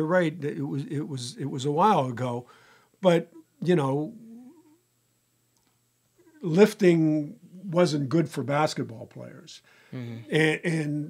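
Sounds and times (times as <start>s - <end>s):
faint wavering hum: 0.0s - 11.0s.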